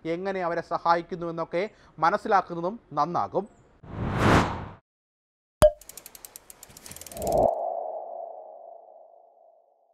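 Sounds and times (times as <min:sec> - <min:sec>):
quick run of ticks: 0:05.8 - 0:07.5.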